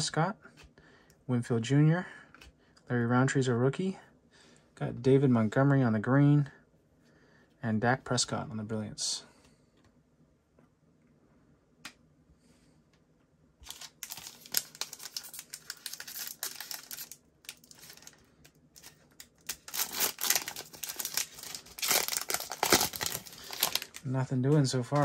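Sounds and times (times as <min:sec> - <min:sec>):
cellophane wrapper crinkling and tearing: 0:13.6 - 0:25.0.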